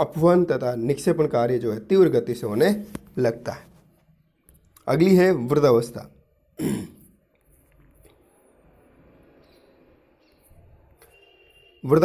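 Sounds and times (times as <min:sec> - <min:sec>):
man clearing his throat: 0:06.6 - 0:07.1.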